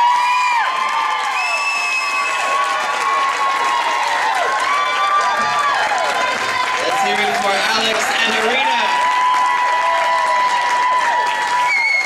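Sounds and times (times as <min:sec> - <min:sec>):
long woo whoops: 0:00.0 - 0:02.9, 0:09.0 - 0:12.0
audience cheering and applauding: 0:00.0 - 0:12.0.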